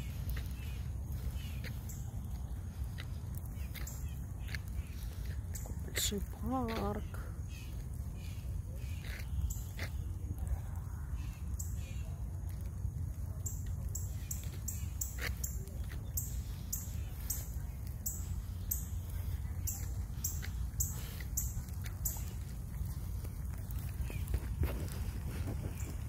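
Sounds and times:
wind on microphone: 22.2 - 26.0.

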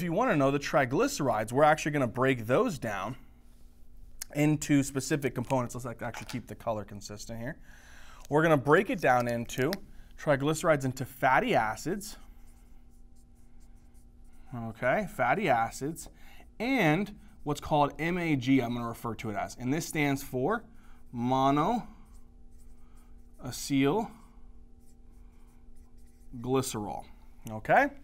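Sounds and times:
marker scratching on whiteboard: 8.5 - 27.2.

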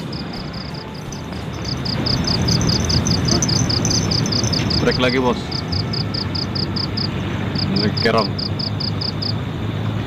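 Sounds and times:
insect chirping: 0.0 - 9.4
low background rumble: 0.0 - 10.0.

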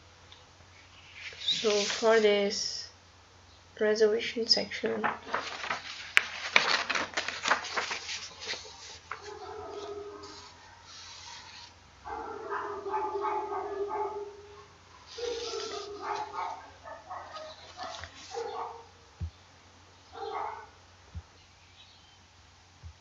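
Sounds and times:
dog whining and barking: 9.3 - 10.9, 12.1 - 18.9.

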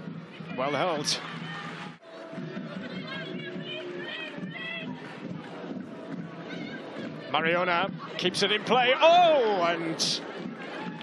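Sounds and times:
stadium crowd murmur: 0.0 - 11.0.

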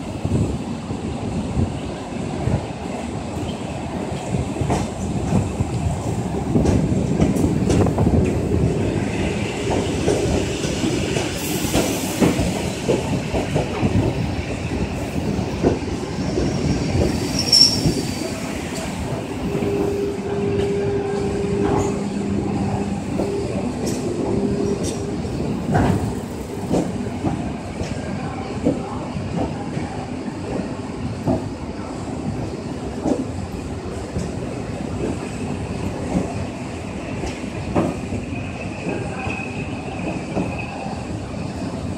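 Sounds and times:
electric train rumbling past: 0.0 - 41.9.

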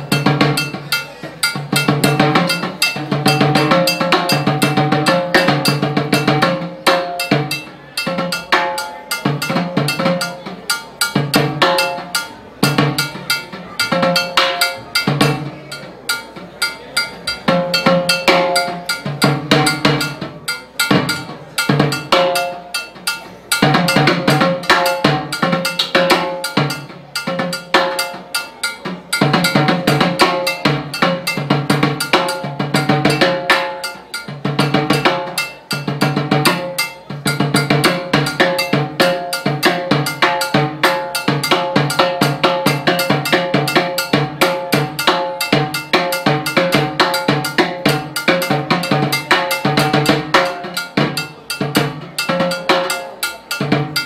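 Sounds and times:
cowbell: 0.0 - 54.0
timbales played with sticks: 0.0 - 54.0.

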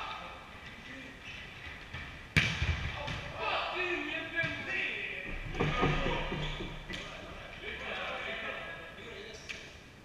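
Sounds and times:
volleyball slap: 5.3 - 7.1.

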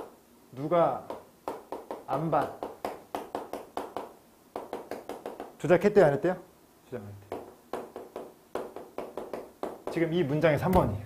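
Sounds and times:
chalk tapping on blackboard: 0.0 - 6.0, 7.3 - 10.9.

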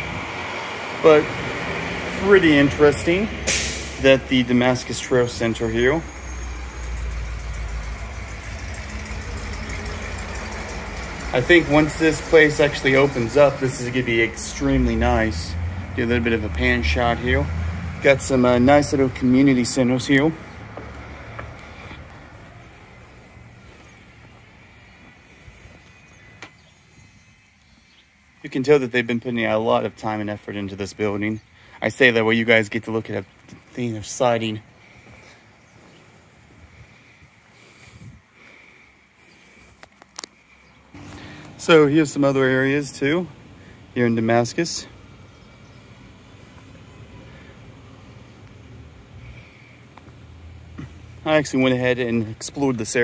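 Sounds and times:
low outdoor rumble: 0.0 - 27.4, 40.9 - 53.0.

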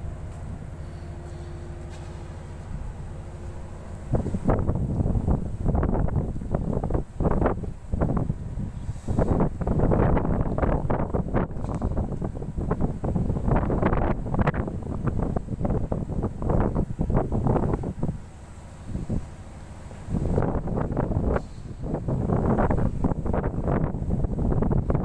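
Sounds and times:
low rumble: 0.0 - 18.2
wind buffeting microphone: 1.9 - 25.0.

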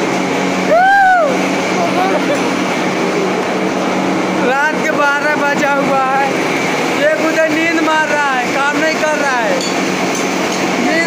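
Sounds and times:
workshop machinery humming: 0.0 - 11.0
man talking: 4.4 - 6.4, 7.0 - 9.6, 10.8 - 11.0.

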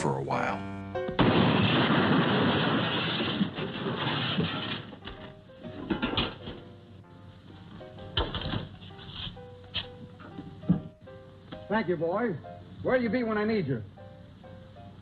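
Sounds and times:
car collapsing with crashing clatter: 1.2 - 5.2.

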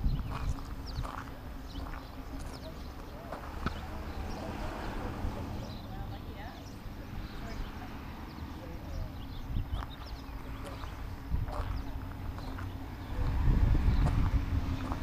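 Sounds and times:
wind rumbling on microphone: 0.0 - 2.6, 3.6 - 15.0
footsteps on grass: 0.2 - 4.0.

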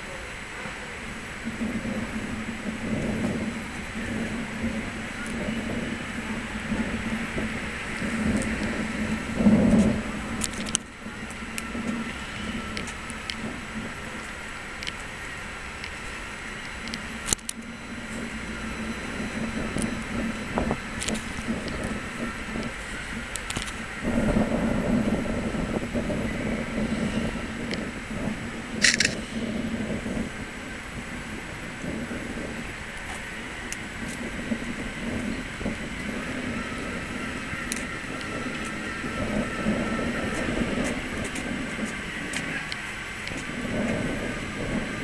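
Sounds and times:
city background rumble: 0.0 - 45.0
wind on microphone: 0.0 - 45.0.

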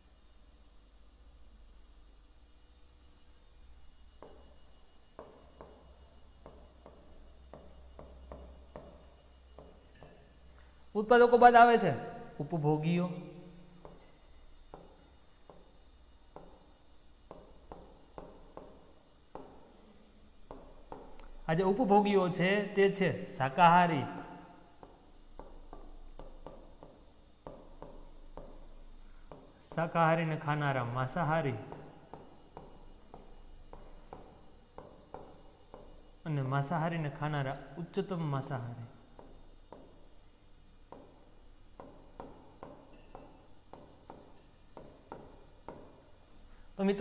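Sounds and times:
steady low hum: 0.0 - 47.0
pen strokes and taps on screen: 4.2 - 10.4, 13.8 - 19.8, 24.2 - 29.9, 31.7 - 36.2, 38.8 - 46.4.

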